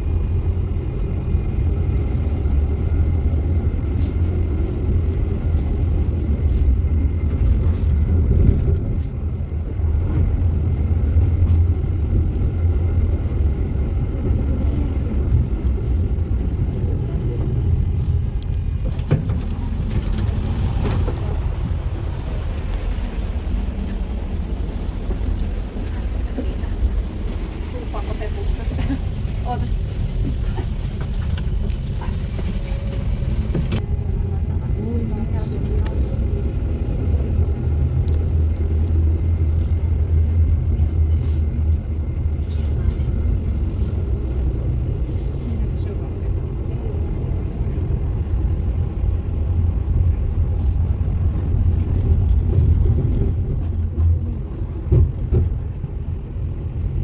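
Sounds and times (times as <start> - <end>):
tram rumbling on rails: 0.0 - 57.0.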